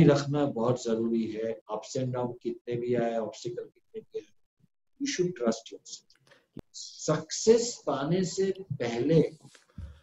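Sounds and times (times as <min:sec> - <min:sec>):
man talking: 0:00.0 - 0:04.2, 0:05.0 - 0:06.0, 0:06.6 - 0:09.5.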